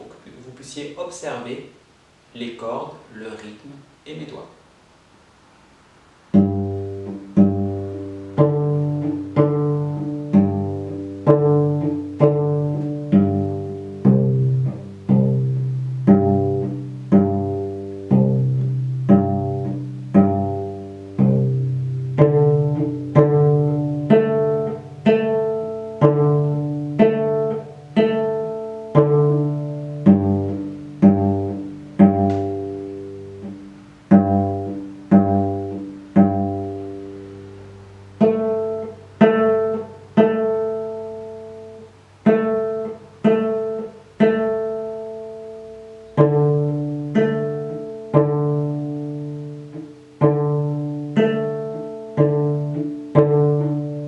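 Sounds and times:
cello plucked notes: 6.0s - 54.0s.

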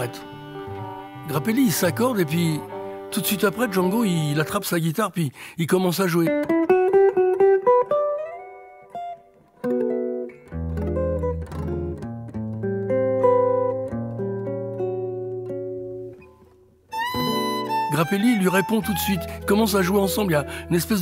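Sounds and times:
jazz guitar playing: 0.0s - 4.6s, 6.2s - 21.0s
sustained violin note: 0.0s - 4.6s, 17.0s - 19.0s.

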